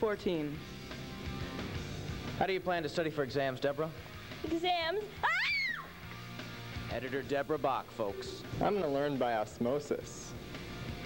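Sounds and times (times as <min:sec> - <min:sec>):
girl's high-pitched exclamation: 0:05.2 - 0:05.9.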